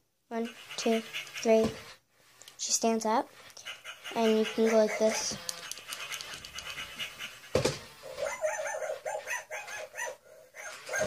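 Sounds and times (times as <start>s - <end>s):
toy puppy electronic barks: 3.6s - 7.2s, 7.9s - 11.0s.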